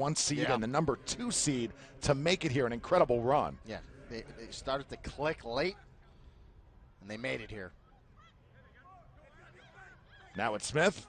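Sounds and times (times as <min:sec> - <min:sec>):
distant shouting voices: 0:00.0 - 0:11.0.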